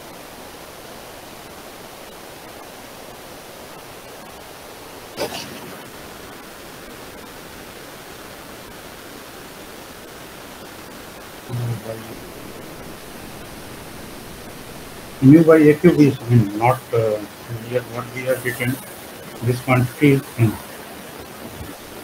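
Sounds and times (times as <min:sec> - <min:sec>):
recording hiss: 0:00.0 - 0:22.0.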